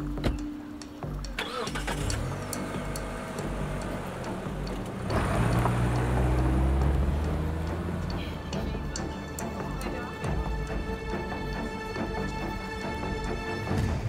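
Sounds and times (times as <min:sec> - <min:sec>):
background music ticking beat: 0:00.0 - 0:14.0
car engine accelerating: 0:01.3 - 0:14.0.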